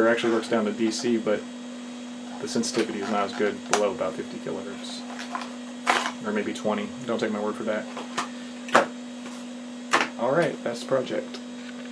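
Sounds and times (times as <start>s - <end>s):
bench equipment humming: 0.0s - 11.9s.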